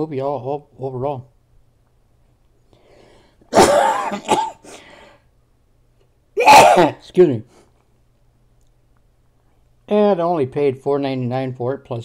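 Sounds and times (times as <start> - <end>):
faint breath in: 2.7 - 3.5, 4.6 - 5.3
person coughing harshly: 3.5 - 4.8, 6.4 - 7.0.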